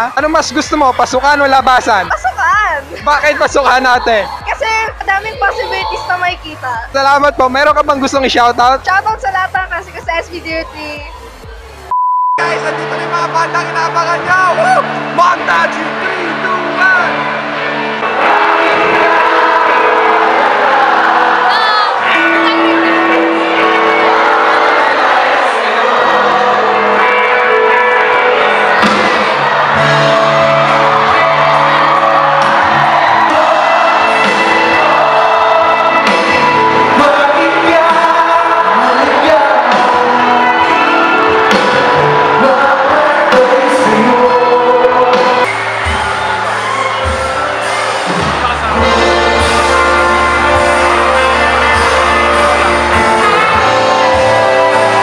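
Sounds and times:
audience cheering and shouting: 0.0s - 55.0s
loud live band music: 0.0s - 55.0s
person singing: 33.3s - 45.5s.

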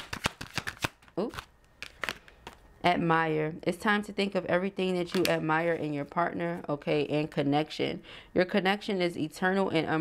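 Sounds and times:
cards being shuffled: 0.0s - 2.6s.

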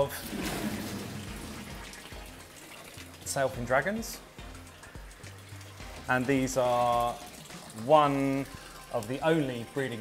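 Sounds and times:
water trickling into a pool: 0.0s - 10.0s.

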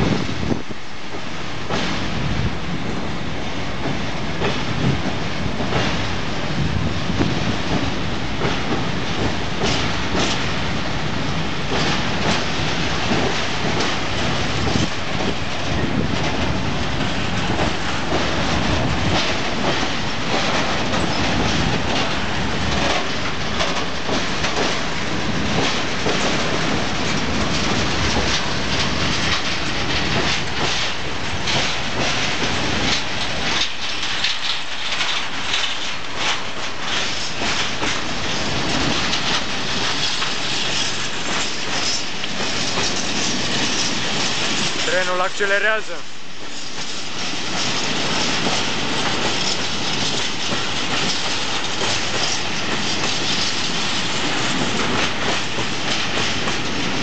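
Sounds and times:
train rumbling over steel bridge: 0.0s - 57.0s
wheels clattering on rails: 3.8s - 57.0s.

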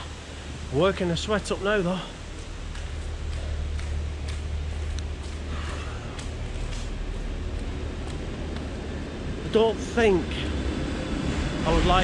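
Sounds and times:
steady low rumble: 0.0s - 12.0s
footsteps on path: 1.7s - 9.3s.

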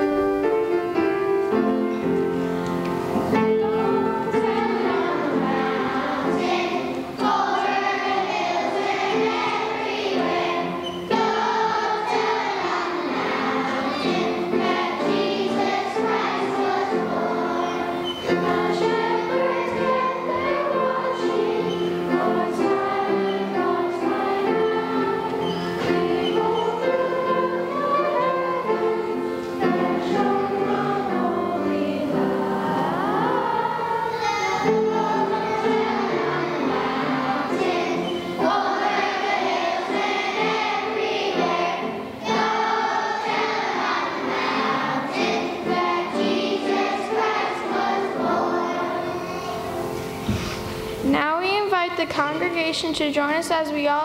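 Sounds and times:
children's choir singing: 0.0s - 53.3s.

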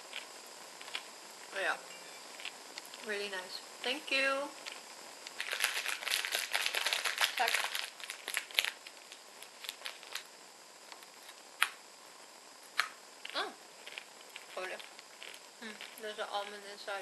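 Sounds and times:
plastic bag crinkling: 5.3s - 10.3s.

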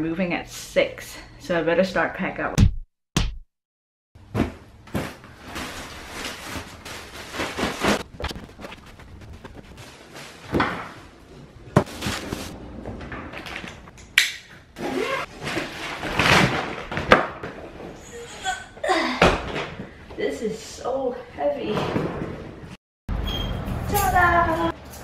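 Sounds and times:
nylon bag rustling: 5.0s - 10.5s
sharp knocks and thumps: 8.0s - 9.8s.

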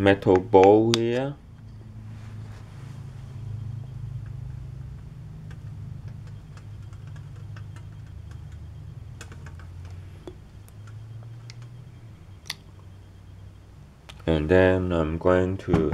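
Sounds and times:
low motor hum: 0.0s - 15.9s.

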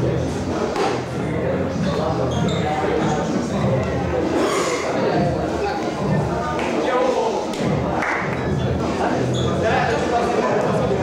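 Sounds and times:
chatter of onlookers: 0.0s - 11.0s.

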